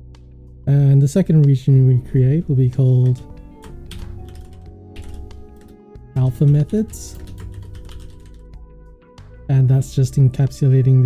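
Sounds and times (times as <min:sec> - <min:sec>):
background music: 0:00.0 - 0:11.0
typing on computer keyboard: 0:03.0 - 0:08.5.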